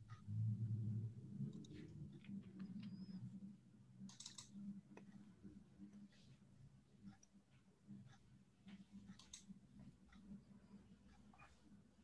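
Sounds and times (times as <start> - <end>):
computer mouse clicks: 1.4 - 3.2, 4.0 - 5.3, 8.1 - 10.4.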